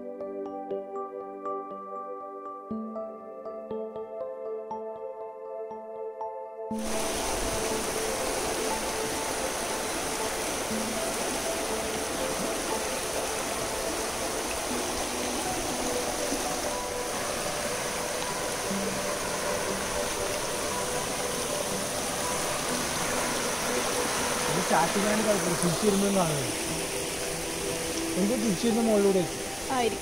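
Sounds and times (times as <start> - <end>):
creek water rushing over rocks: 6.8 - 30.0.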